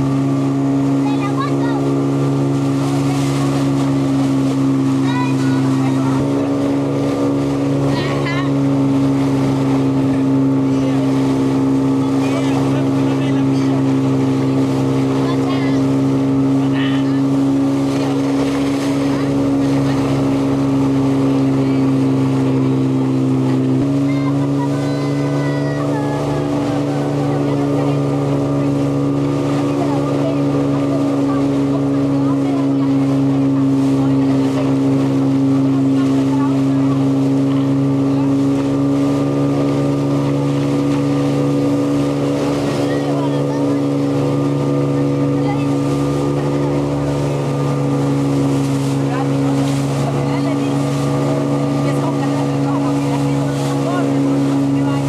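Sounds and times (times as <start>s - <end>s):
motorboat engine droning: 0.0s - 55.0s.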